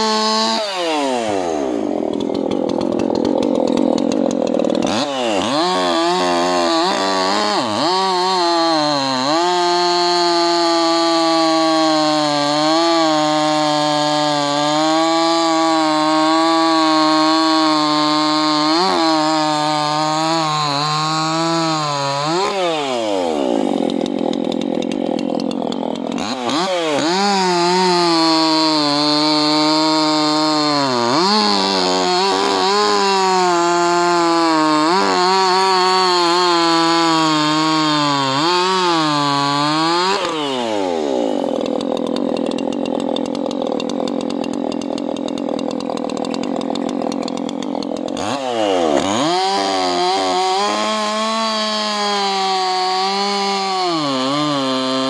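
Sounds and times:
chainsaw cutting logs: 0.0s - 55.0s.

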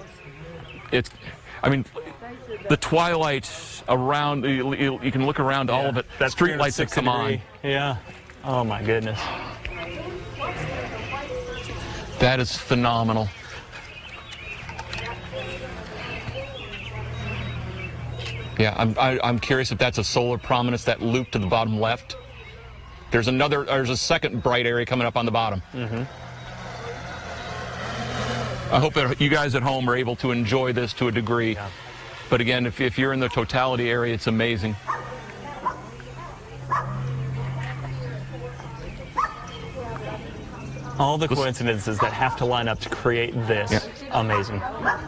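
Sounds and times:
steady low hum: 8.7s - 42.0s
dog yipping: 34.9s - 35.9s, 36.7s - 37.0s, 39.2s - 39.5s, 44.2s - 45.0s.

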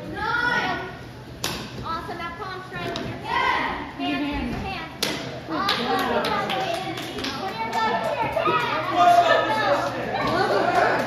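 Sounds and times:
children and adults talking: 0.0s - 11.0s.

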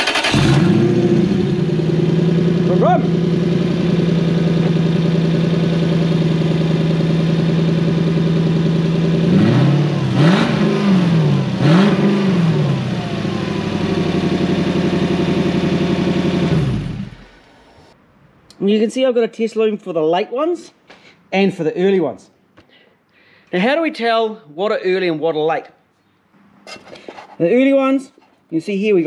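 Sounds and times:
engine idling and revving: 0.0s - 18.0s
engine running down to stop: 0.1s - 18.0s.

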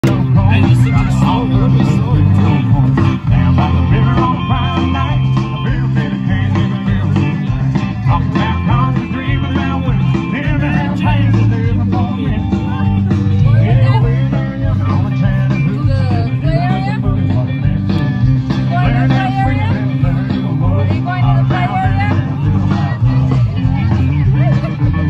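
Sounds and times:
country rock band playing: 0.0s - 25.0s
person singing: 0.0s - 25.0s.

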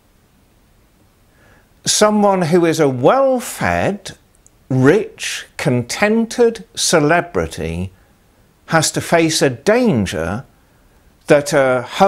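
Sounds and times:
faint intake of breath: 1.2s - 1.8s, 7.9s - 8.6s, 10.5s - 11.2s
man speaking: 1.8s - 8.0s, 8.7s - 10.5s, 11.2s - 12.0s.

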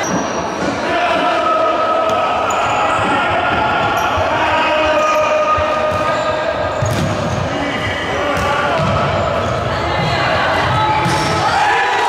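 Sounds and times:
people calling and shouting: 0.0s - 12.0s.

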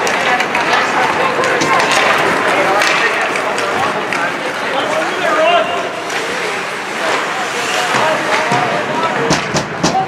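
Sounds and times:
hockey sticks and puck clacking: 0.0s - 10.0s
skates scraping ice: 0.0s - 10.0s.

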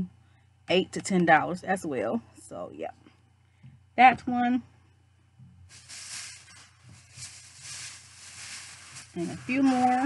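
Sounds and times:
rustling and rummaging: 5.7s - 10.0s.

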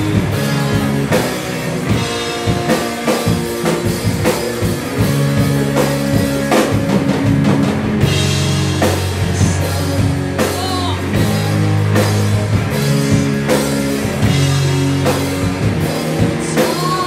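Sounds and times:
drum kit hits: 0.0s - 17.0s
electric bass: 0.0s - 17.0s
electric guitars: 0.0s - 17.0s.

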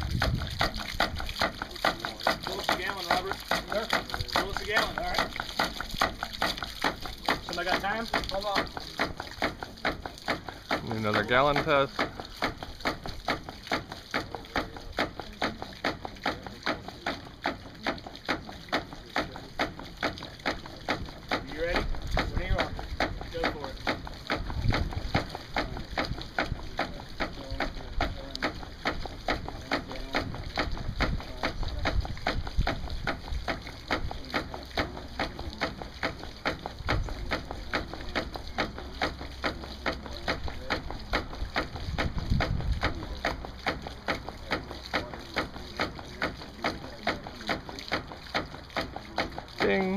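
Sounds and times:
ram pump clacking: 0.0s - 49.9s
water running into plastic jug: 0.0s - 49.9s.

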